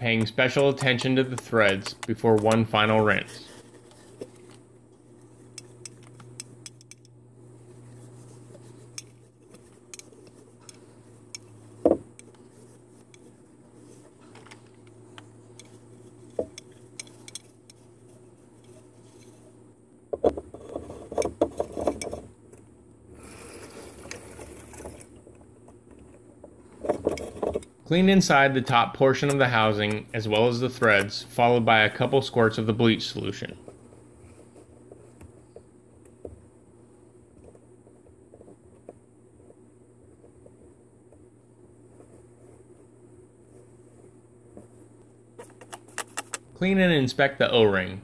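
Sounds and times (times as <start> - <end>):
low steady hum: 0.0 - 48.0.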